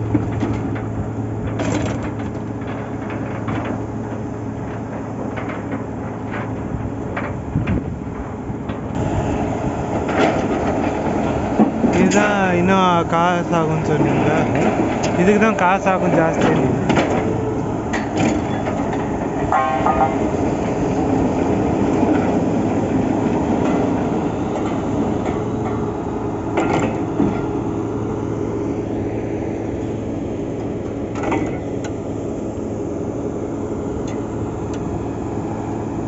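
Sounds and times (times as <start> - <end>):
drilling rig machinery running: 0.0 - 36.0
short metallic knocks: 19.4 - 20.5.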